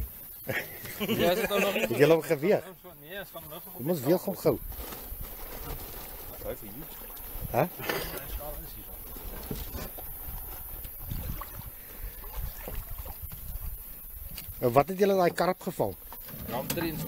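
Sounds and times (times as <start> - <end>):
men's voices: 0.4 - 4.6, 6.4 - 9.9.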